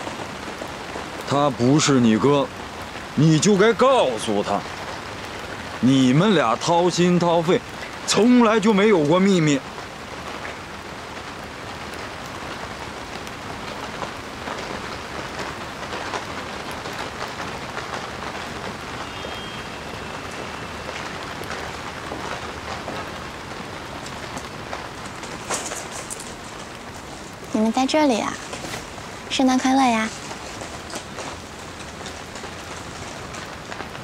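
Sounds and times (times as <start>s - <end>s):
rain on pavement: 0.0s - 34.0s.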